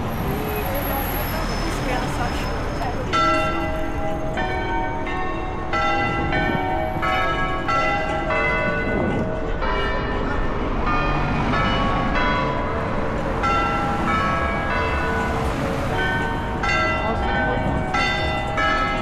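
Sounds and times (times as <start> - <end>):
church bells ringing in a peal: 0.0 - 19.0
low street and traffic noise: 0.0 - 19.0.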